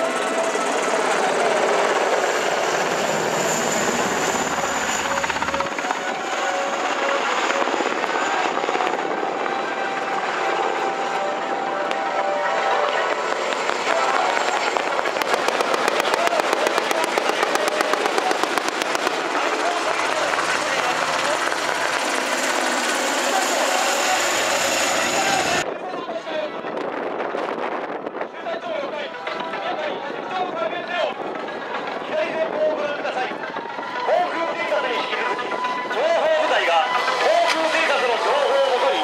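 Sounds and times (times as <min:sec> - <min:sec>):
helicopter flying overhead: 0:00.0 - 0:25.7, 0:26.4 - 0:39.0
rapid rotor blade chop: 0:13.5 - 0:25.6.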